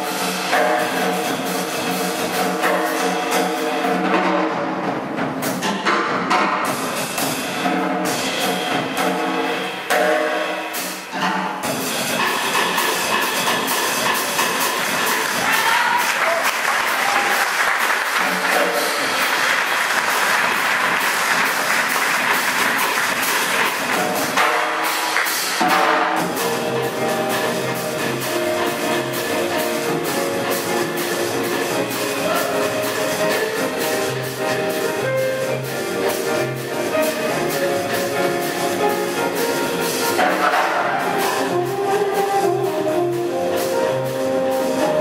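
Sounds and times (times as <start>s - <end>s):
jazz trio playing: 0.0s - 45.0s
audience applauding: 14.6s - 24.4s.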